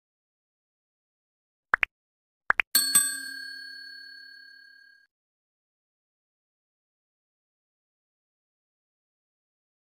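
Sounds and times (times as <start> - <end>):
notification bell ding: 2.8 - 5.0.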